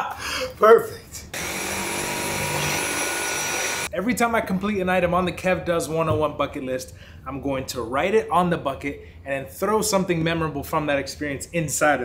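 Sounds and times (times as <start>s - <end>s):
stick vacuum running: 1.3s - 3.9s.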